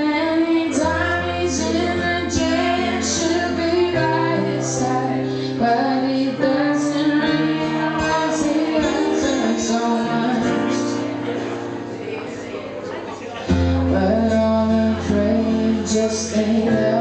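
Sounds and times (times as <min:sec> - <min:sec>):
woman singing: 0:00.0 - 0:11.1, 0:13.6 - 0:17.0
held keyboard chords: 0:00.0 - 0:17.0.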